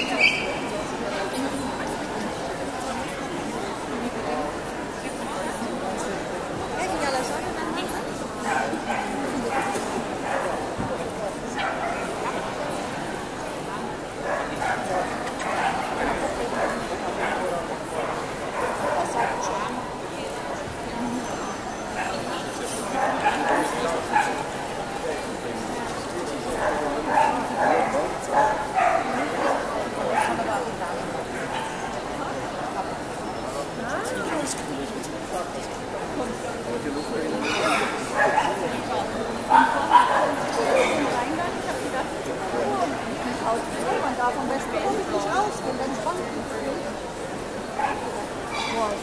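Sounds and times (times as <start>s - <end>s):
crowd chatter: 0.0s - 49.0s.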